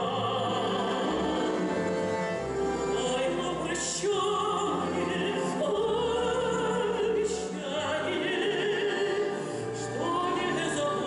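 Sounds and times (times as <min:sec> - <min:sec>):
folk string orchestra playing: 0:00.0 - 0:11.0.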